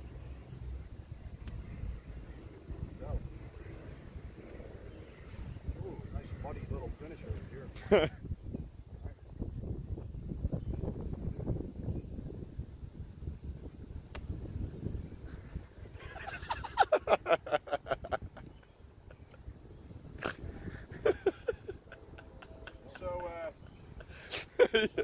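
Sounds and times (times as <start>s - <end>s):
wind rumble on microphone: 0.0s - 25.0s.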